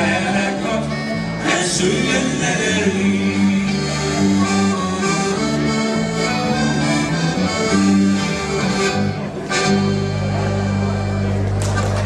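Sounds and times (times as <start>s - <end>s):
accordion: 0.0s - 12.0s
electric and acoustic guitars: 0.0s - 12.0s.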